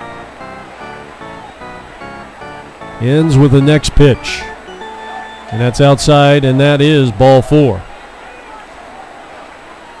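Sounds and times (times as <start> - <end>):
distant voices of crowd: 0.0 - 10.0.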